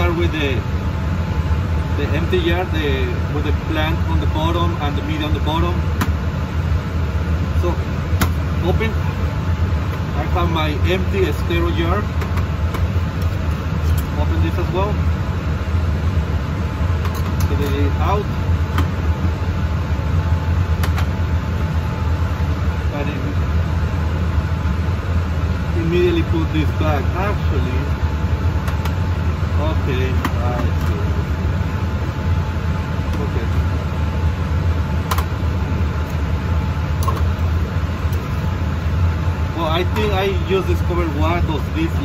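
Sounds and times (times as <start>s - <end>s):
fan humming: 0.0s - 42.0s.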